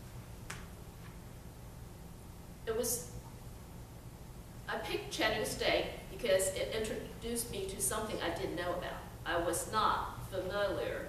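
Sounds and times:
room hum: 0.0s - 11.0s.

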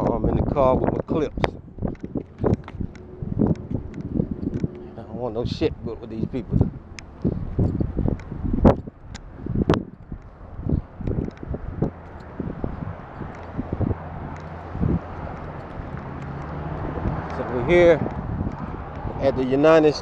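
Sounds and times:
wind on microphone: 0.0s - 20.0s
steady low drone: 1.0s - 20.0s
footsteps on asphalt: 1.4s - 19.2s.

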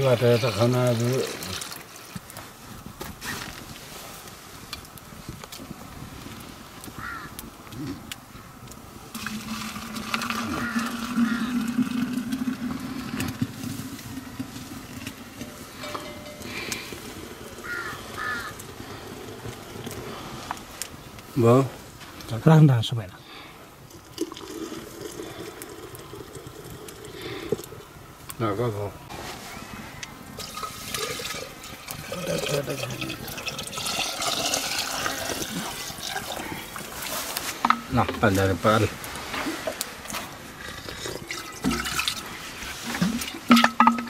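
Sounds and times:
wood fire crackling: 0.0s - 44.0s
milk pouring in metal pot: 9.1s - 16.4s, 30.4s - 37.0s.

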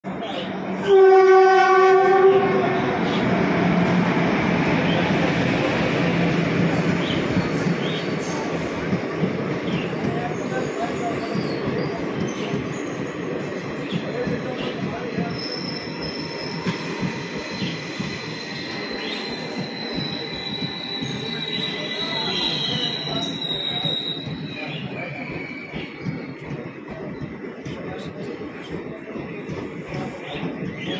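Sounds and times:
train coaches rumbling: 0.0s - 30.9s
train horn: 0.8s - 3.0s
high wheel squeal: 15.2s - 26.3s.

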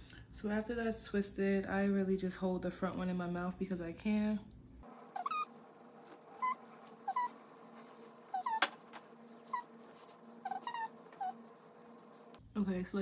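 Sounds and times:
low steady hum: 2.9s - 13.0s
high whining squeaks: 4.8s - 12.4s.

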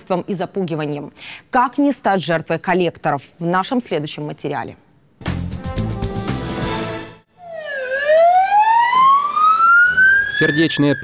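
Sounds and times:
ambulance siren wailing: 7.3s - 11.0s.

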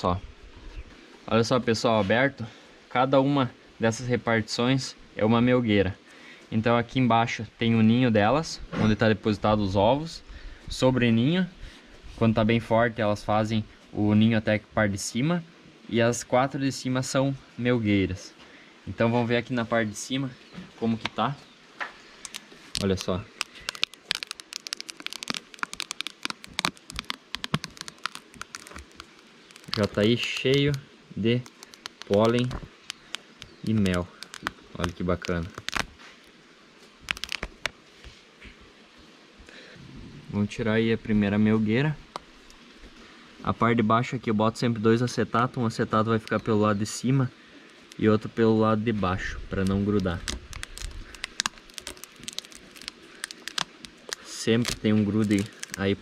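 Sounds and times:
plastic sheet crinkling: 22.1s - 30.8s, 31.4s - 36.0s, 37.0s - 37.8s, 49.5s - 56.0s
crackling and ticking clicks: 22.2s - 30.8s, 31.4s - 35.9s, 37.1s - 37.8s, 49.6s - 55.9s
knife cutting through sticky seal: 22.2s - 30.8s, 31.4s - 35.9s, 37.1s - 37.7s, 50.0s - 55.8s.

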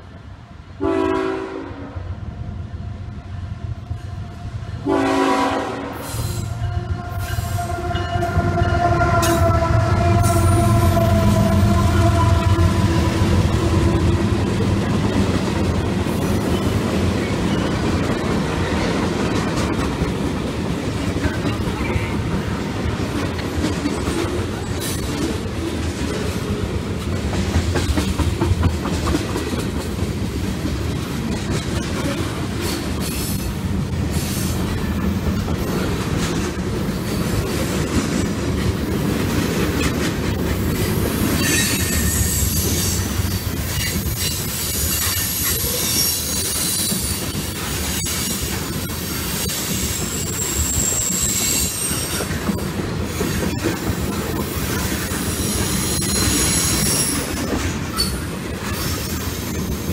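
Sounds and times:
freight cars rumbling past: 6.5s - 19.6s
wheels clacking over rail joints: 12.0s - 59.9s
steel-on-steel squeal: 41.4s - 43.0s, 43.8s - 47.3s, 49.7s - 52.3s, 55.2s - 59.5s.

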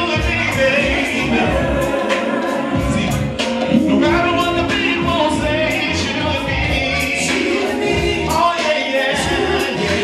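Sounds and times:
amplified music with bass and beat: 0.0s - 10.0s
vocal group singing: 0.0s - 10.0s.

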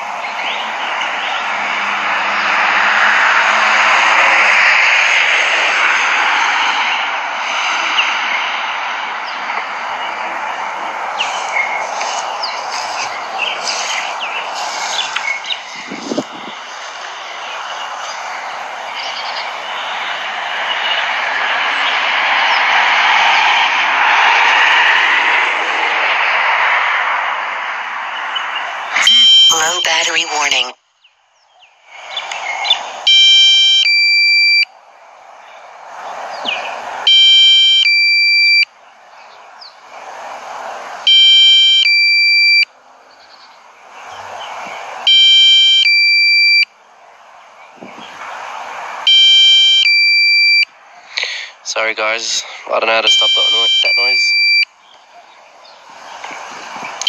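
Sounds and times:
steady rushing noise: 0.0s - 30.7s, 31.6s - 34.0s, 38.6s - 41.2s, 46.7s - 53.3s, 53.9s - 57.0s
high electronic warning beeps: 29.0s - 30.8s, 33.1s - 34.7s, 37.1s - 38.7s, 41.1s - 42.7s, 45.1s - 46.7s, 49.1s - 50.7s, 53.0s - 54.7s.

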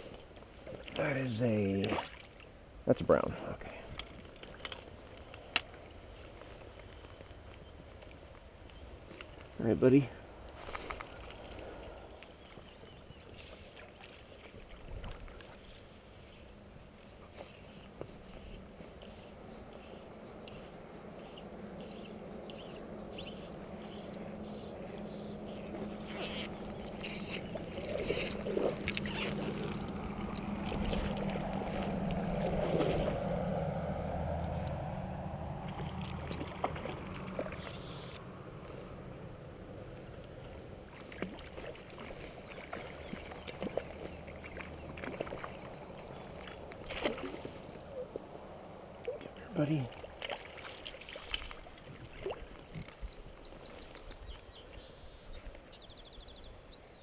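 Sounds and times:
water sloshing around legs: 0.0s - 2.5s, 10.4s - 38.2s, 40.3s - 48.3s, 48.9s - 54.5s
fishing gear clicks and knocks: 3.8s - 9.6s, 24.9s - 33.1s, 35.7s - 38.2s.

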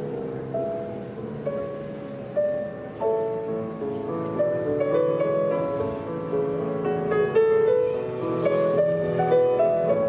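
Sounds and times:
slow piano notes: 0.0s - 10.0s.

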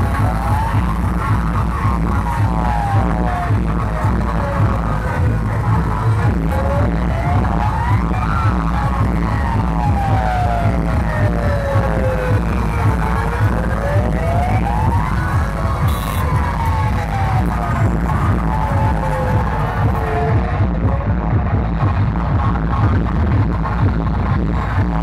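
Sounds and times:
siren wailing up and down: 0.0s - 20.7s
music with heavy bass beats: 0.0s - 25.0s.

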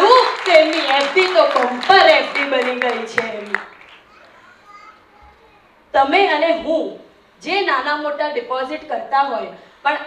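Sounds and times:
woman speaking into a microphone: 0.0s - 3.7s, 5.9s - 10.0s
faint murmur of voices: 4.0s - 6.0s.

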